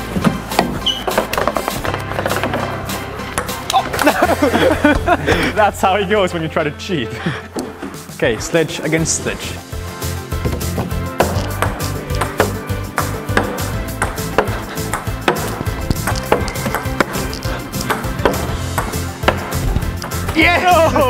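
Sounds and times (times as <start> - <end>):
background music with beat: 0.0 - 6.2, 6.9 - 21.0
ping pong ball clicks and knocks: 11.2 - 20.3.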